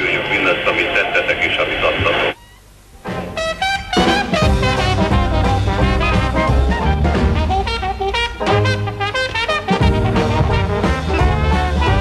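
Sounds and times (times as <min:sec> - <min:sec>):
commentator speaking: 0:00.0 - 0:02.4.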